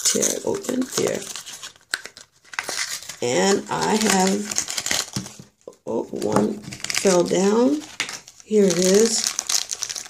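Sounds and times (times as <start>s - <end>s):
plastic wrapper tearing and crinkling: 0.0s - 5.6s, 6.4s - 10.0s.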